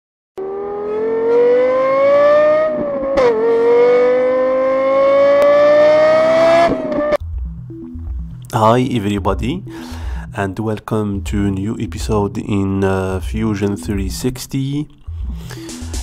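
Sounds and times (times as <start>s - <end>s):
car engine accelerating: 0.4s - 8.5s.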